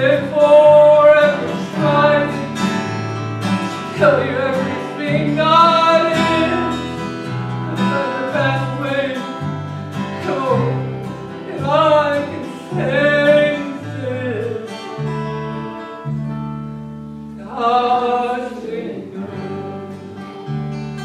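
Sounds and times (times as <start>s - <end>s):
strummed acoustic guitar: 0.0s - 21.0s.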